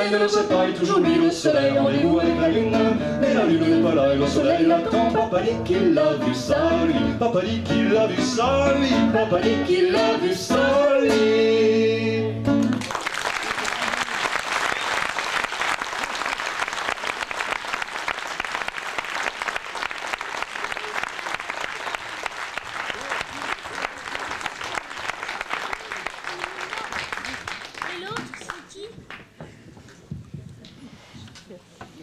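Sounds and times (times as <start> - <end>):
audience applause: 12.6 - 29.2.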